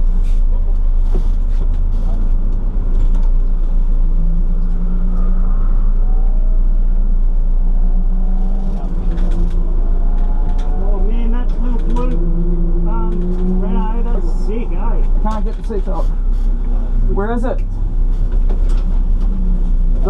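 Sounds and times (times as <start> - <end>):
car engine running: 0.0 - 20.0
muffled voices: 8.6 - 17.8.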